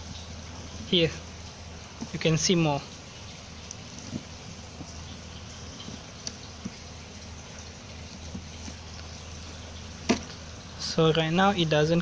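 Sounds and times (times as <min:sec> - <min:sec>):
ticks and crackles of dry compost: 0:00.0 - 0:11.3
low hum and hiss: 0:00.0 - 0:12.0.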